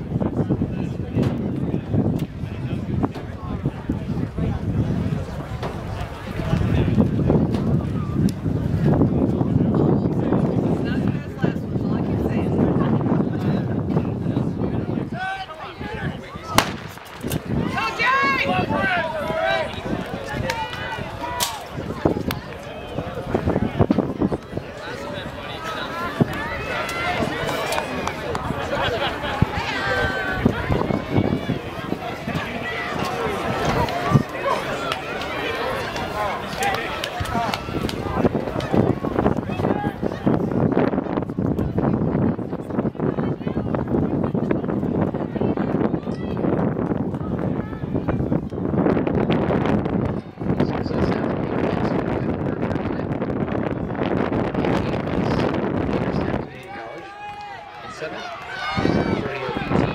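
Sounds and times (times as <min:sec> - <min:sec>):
people talking indistinctly: 0:00.0 - 0:59.9
wind buffeting microphone: 0:00.0 - 0:59.9.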